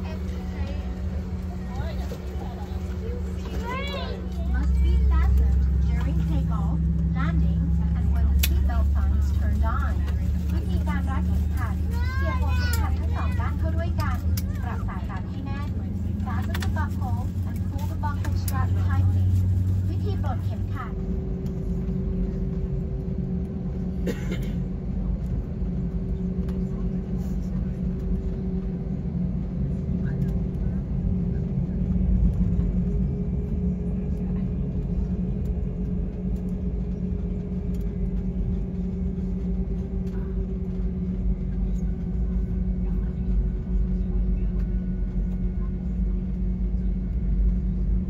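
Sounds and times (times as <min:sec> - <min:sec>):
voices: 0:00.0 - 0:22.8
airliner cabin drone: 0:00.0 - 0:48.0.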